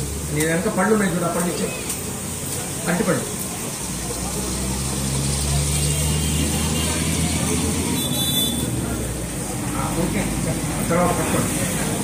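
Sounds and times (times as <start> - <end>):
vehicle engine passing: 3.7 - 12.0.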